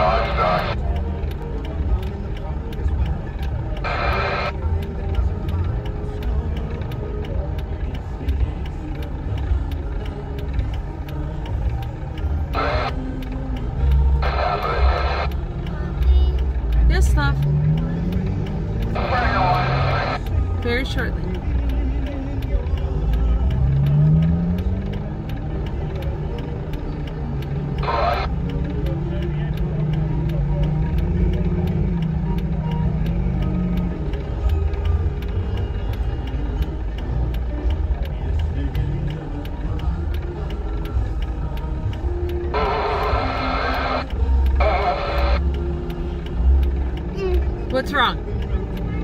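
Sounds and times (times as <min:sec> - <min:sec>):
vehicle engines idling: 0:00.0 - 0:49.0.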